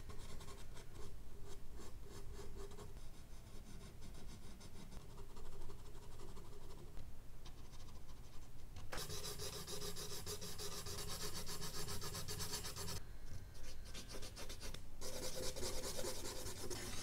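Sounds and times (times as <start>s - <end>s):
charcoal strokes on paper: 13.6s - 17.0s
brush scrubbing over paper: 15.0s - 17.0s.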